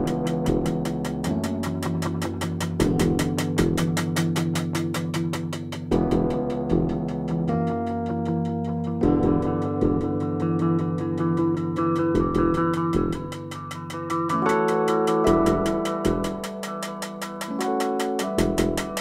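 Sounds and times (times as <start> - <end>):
held keyboard chords: 0.0 - 19.0.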